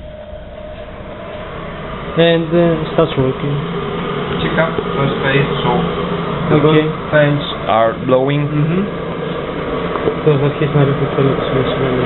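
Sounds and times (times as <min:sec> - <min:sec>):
boiler fan whirring: 0:00.0 - 0:12.0
faint steady hum: 0:00.0 - 0:12.0.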